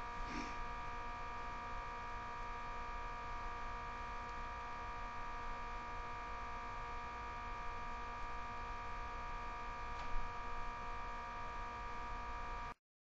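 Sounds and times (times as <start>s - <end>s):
electrical hum: 0.0s - 12.8s.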